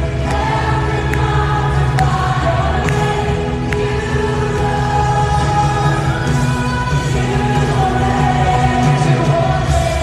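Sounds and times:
live worship song over pa: 0.0 - 10.0
man singing: 4.0 - 10.0.

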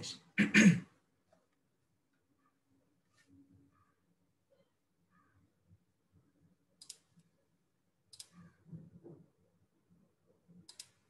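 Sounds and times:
computer mouse clicks: 6.8 - 7.3, 8.1 - 8.6, 10.6 - 11.0.

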